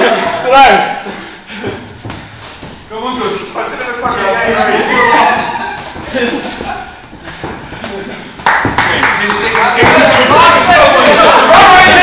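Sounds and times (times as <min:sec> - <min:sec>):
boxing gloves hitting: 0:01.9 - 0:02.8
voices shouting in hall: 0:04.3 - 0:06.0, 0:09.8 - 0:12.0.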